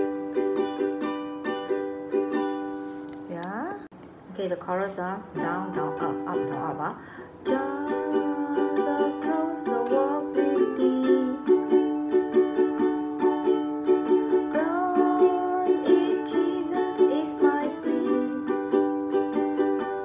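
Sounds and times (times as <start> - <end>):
ukulele strumming: 0.0 - 3.9, 5.3 - 20.0.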